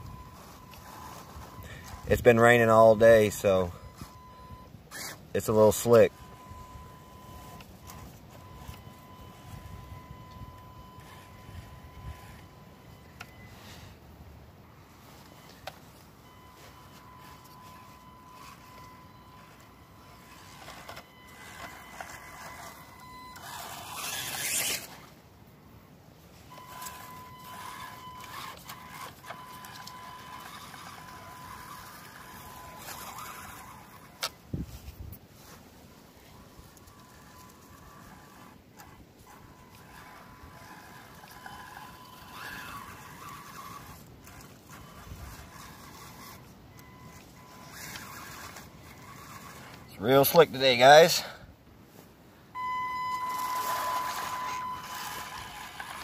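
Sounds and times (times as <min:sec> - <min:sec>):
small electric motor whining: 0:00.0 - 0:25.3, 0:26.2 - 0:51.3, 0:52.6 - 0:56.0.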